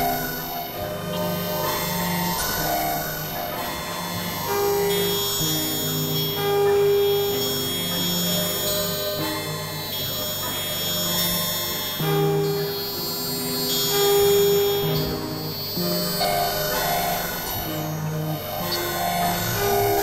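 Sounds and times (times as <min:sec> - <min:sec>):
synthesizer drone music: 0:13.9 - 0:20.0.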